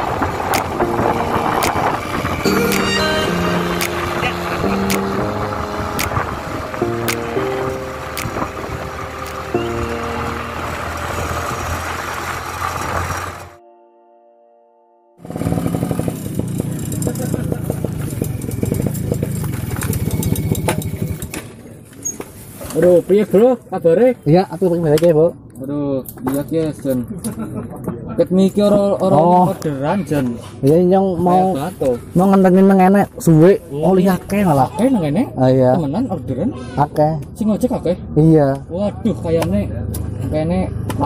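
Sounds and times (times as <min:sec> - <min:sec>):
background music with a beat: 0:00.3 - 0:10.9
small motorcycle engine running: 0:15.2 - 0:21.3.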